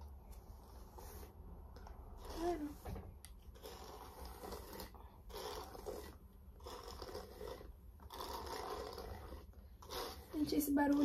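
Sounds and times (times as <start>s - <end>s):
hairbrush rasping through hair: 0.0s - 11.0s.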